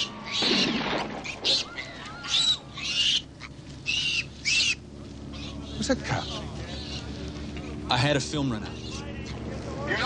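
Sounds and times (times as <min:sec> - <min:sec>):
bird raspy calls: 0:00.0 - 0:07.9, 0:08.5 - 0:09.5.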